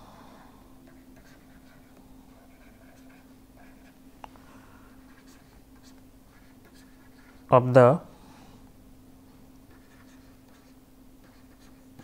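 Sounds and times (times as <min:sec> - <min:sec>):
steady low hum: 0:00.0 - 0:12.0
stylus scratching on pen tablet: 0:00.8 - 0:04.0, 0:05.0 - 0:07.5, 0:09.6 - 0:12.0.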